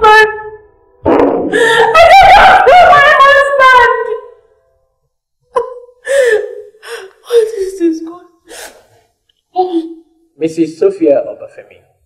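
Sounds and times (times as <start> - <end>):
woman sobbing: 1.5 - 3.8, 5.5 - 8.8.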